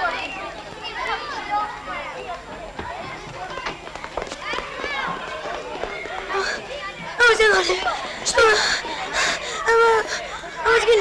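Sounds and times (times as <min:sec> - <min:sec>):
voices calling and talking: 0:00.0 - 0:11.0.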